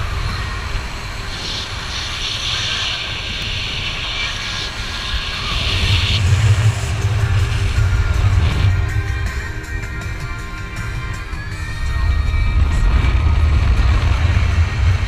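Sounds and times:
wind on microphone: 0:00.0 - 0:15.0
motorboat engine rumble: 0:05.5 - 0:15.0.

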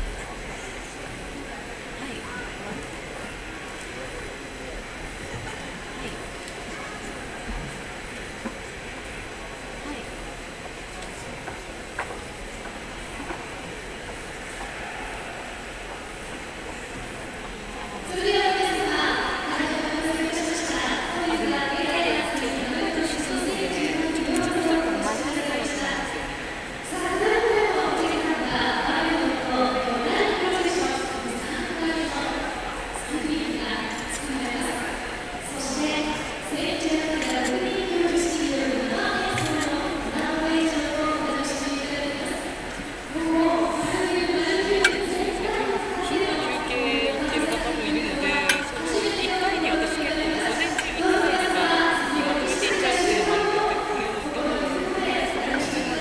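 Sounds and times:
indoor hall hum: 0:00.0 - 0:56.0.

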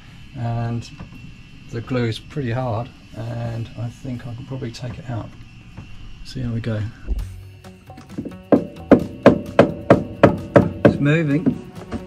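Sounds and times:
tool knocking on solid surface: 0:08.1 - 0:12.0.

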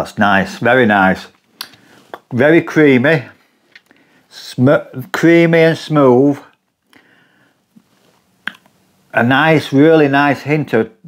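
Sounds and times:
lip smack: 0:08.4 - 0:08.7.

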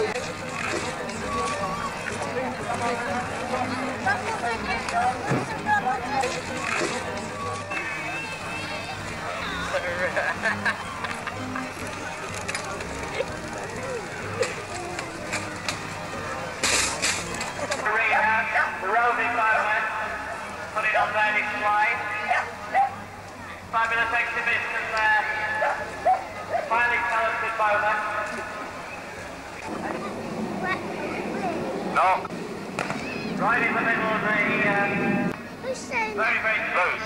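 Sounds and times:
indistinct talking: 0:00.0 - 0:37.0.

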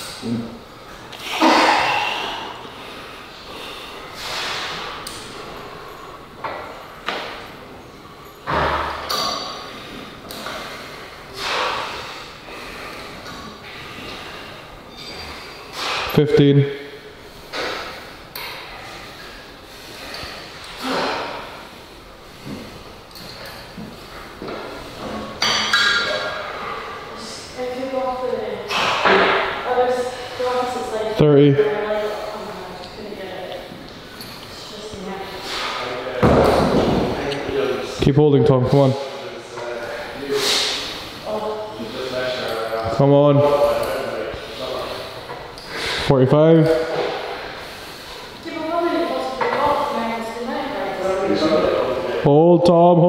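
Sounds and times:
man exhaling sharply: 0:11.4 - 0:12.2
metallic pings from gym equipment: 0:14.9 - 0:16.1, 0:25.4 - 0:26.4.

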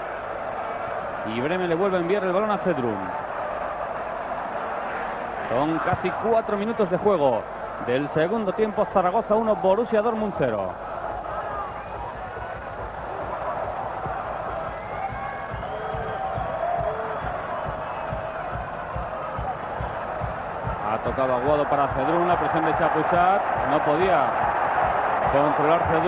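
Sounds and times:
stadium crowd din: 0:00.0 - 0:26.0.

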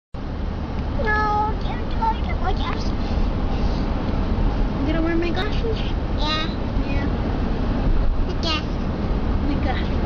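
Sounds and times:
car cabin low rumble: 0:00.2 - 0:10.0.

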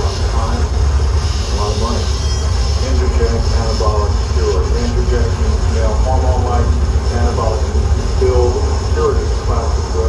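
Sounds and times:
harsh noise low rumble: 0:00.0 - 0:10.0.

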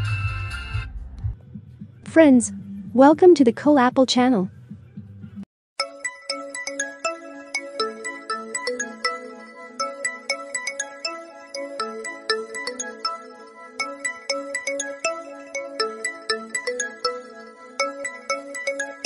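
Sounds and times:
phone ringtone melody: 0:05.8 - 0:19.0.

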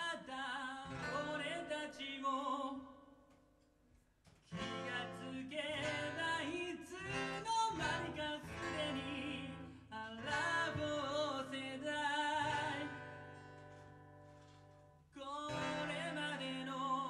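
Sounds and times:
strummed acoustic guitar: 0:00.0 - 0:02.8, 0:04.3 - 0:17.0
man singing: 0:00.0 - 0:03.4, 0:04.4 - 0:13.5, 0:15.1 - 0:17.0
electric guitar: 0:04.3 - 0:17.0.

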